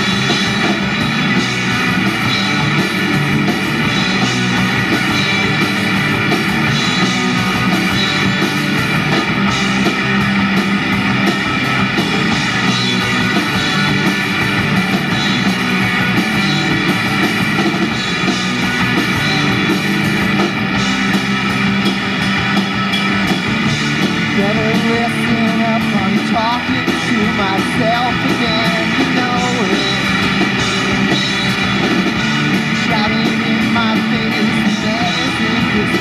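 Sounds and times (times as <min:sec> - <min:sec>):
drum kit with cymbal hits: 0:00.0 - 0:36.0
electric guitar: 0:00.0 - 0:36.0
person singing: 0:24.3 - 0:30.6, 0:32.6 - 0:36.0.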